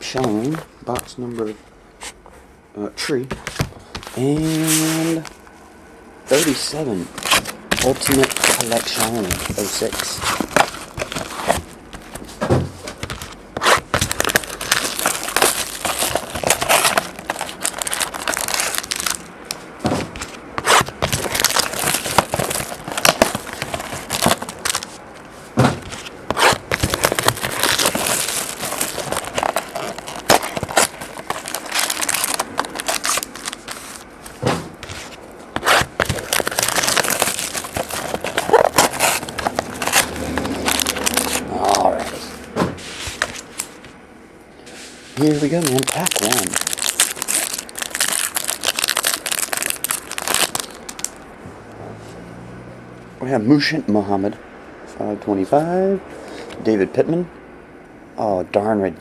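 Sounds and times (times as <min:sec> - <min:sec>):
plastic wrapping crinkling: 0:06.3 - 0:42.4, 0:43.0 - 0:44.0, 0:45.2 - 0:51.2.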